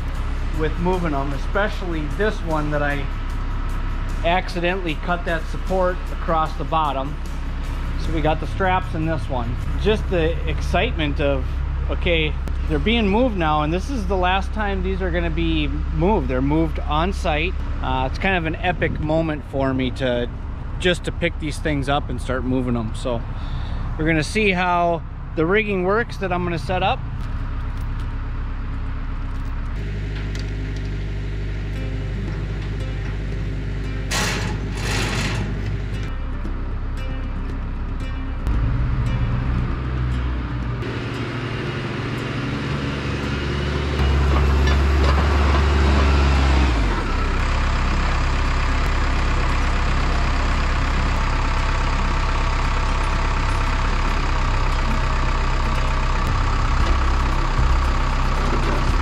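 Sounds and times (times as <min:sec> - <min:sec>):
heavy machine engine running: 0:00.0 - 0:59.0.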